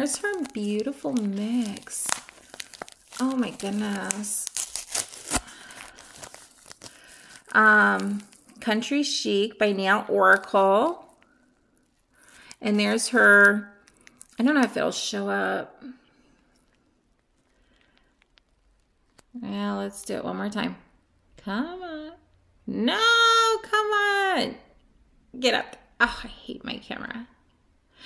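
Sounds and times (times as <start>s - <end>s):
plastic bag crinkling: 0.0s - 14.9s, 16.4s - 19.4s.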